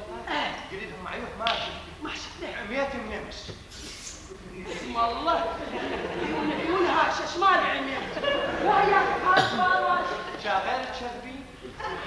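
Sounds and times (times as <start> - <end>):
actors talking on stage: 0.0 - 12.0.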